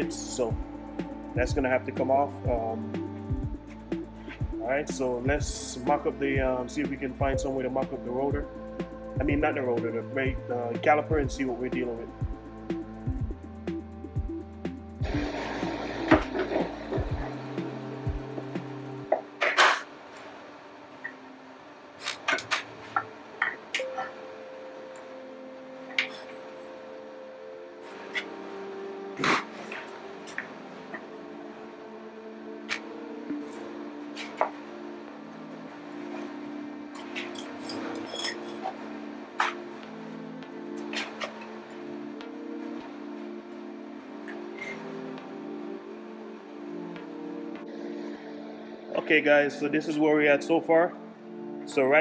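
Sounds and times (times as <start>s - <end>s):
background music with sustained notes: 0.0s - 52.0s.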